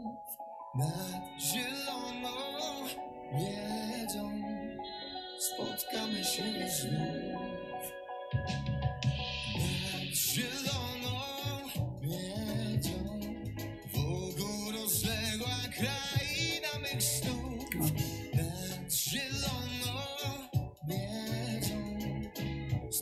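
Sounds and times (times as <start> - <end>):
person singing a ballad: 0.0 - 8.5, 9.2 - 23.0
guitar: 0.0 - 23.0
bass line: 8.3 - 23.0.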